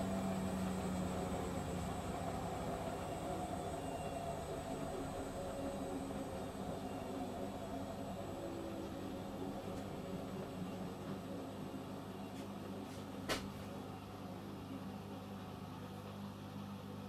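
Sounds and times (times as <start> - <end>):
washing machines motor hum: 0.0 - 17.0.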